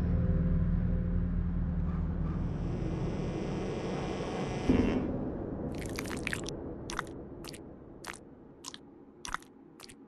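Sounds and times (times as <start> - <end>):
sharp crunchy clicks: 5.8 - 10.0.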